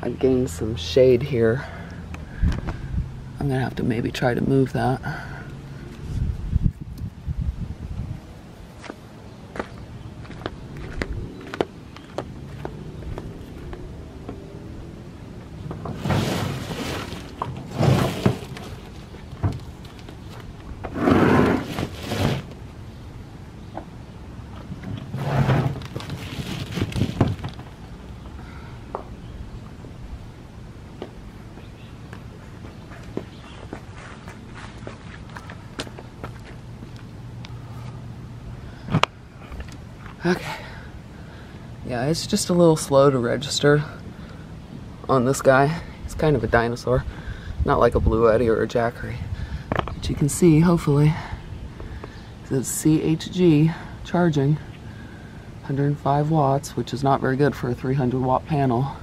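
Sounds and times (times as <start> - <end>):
footsteps on concrete: 8.8 - 14.4, 31.0 - 37.0
solar panel being handled: 15.6 - 22.6, 24.5 - 27.8
clicks and thunks: 15.7 - 21.0.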